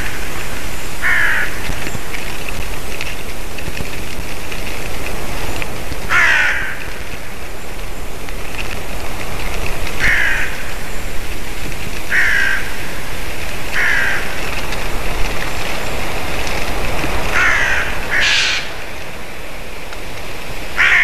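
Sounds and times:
crows cawing: 0:00.0 - 0:02.0, 0:06.0 - 0:07.3, 0:09.9 - 0:11.2, 0:12.0 - 0:14.8, 0:17.3 - 0:19.0, 0:20.7 - 0:21.0
steady background hiss: 0:00.0 - 0:21.0.

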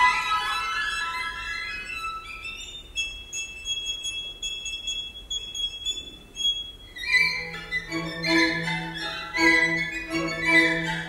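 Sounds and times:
violins playing high notes: 0:07.1 - 0:11.0.

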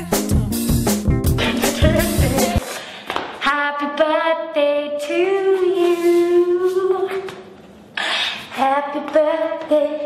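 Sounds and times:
song with steady beat: 0:00.0 - 0:02.7
party horn note: 0:01.3 - 0:02.6.

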